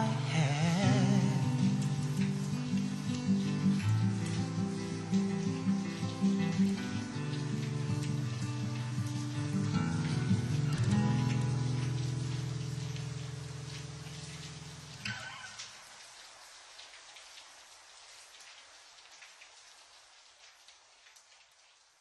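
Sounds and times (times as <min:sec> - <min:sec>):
rain patter: 0:00.0 - 0:22.0.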